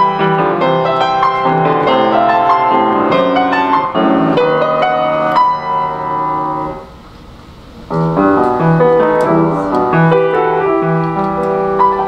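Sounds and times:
grand piano playing classical piece: 0.0s - 7.0s, 7.8s - 12.0s.

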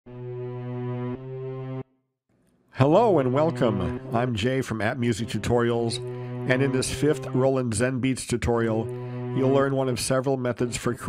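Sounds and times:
buzzy electronic tone: 8.5s - 10.1s.

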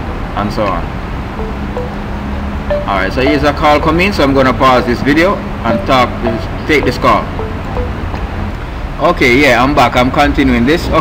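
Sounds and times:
phone ringtone: 1.4s - 8.3s.

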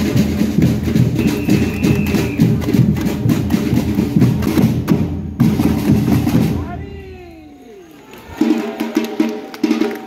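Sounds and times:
bass drums and snare drums: 0.0s - 6.9s, 8.3s - 10.0s.

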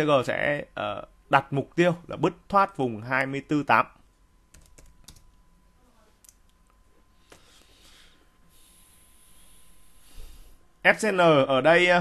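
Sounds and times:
keyboard keystrokes: 4.5s - 5.2s.

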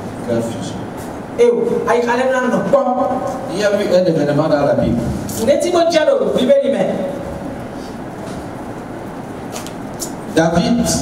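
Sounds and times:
room noise: 0.0s - 11.0s.

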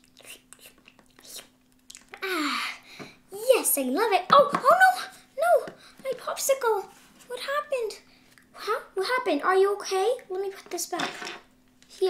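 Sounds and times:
child's mouth smacks and slurps: 0.0s - 2.2s.

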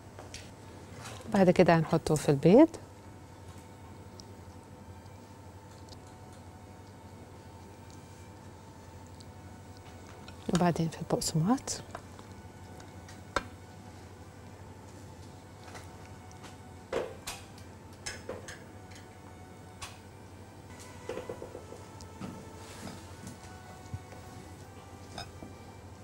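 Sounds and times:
faint background music: 0.0s - 26.0s.

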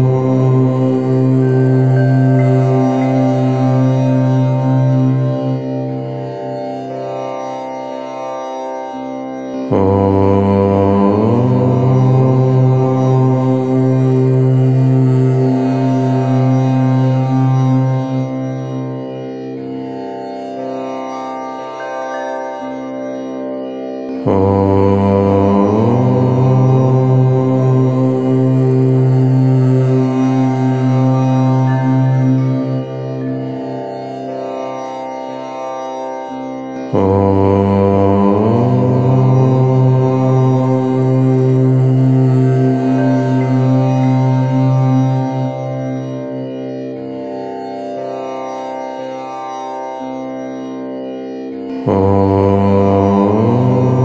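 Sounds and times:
low-pitched om chanting: 0.0s - 54.0s.

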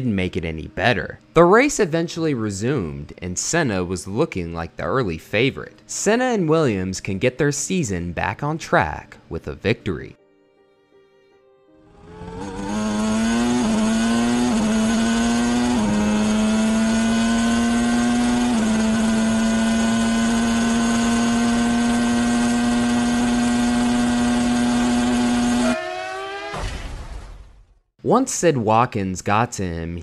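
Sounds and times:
racing car engine at full throttle: 11.9s - 26.8s.

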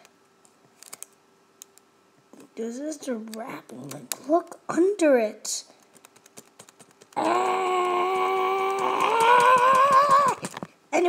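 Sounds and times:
laptop keys clicking: 5.8s - 7.2s.

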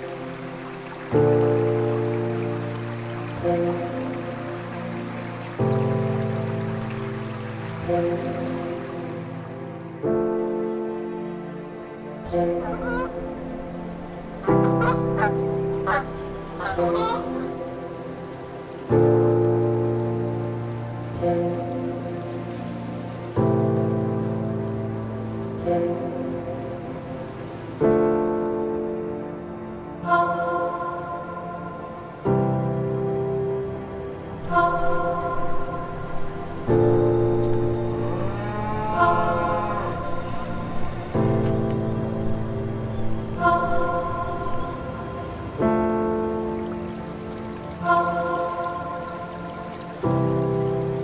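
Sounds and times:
background music sustained chord: 0.0s - 51.0s.

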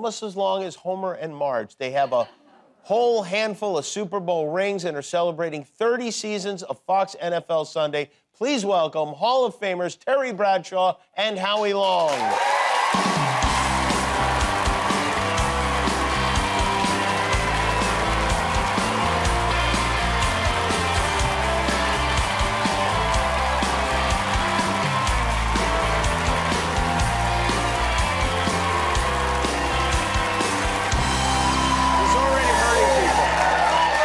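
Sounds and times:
live band playing upbeat music: 12.9s - 34.0s.

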